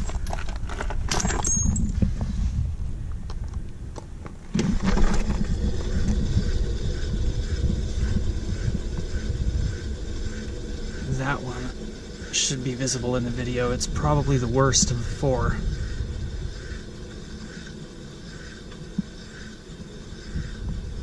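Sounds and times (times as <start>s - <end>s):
wheel whirring on hub: 0.0s - 21.0s.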